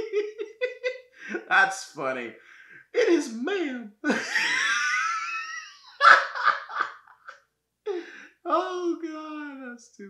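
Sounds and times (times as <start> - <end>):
man laughing hard: 0.0 - 1.5, 4.1 - 7.3.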